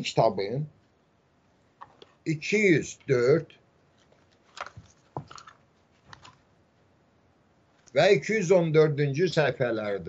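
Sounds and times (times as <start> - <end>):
book pages rustling: 3.9 - 6.5.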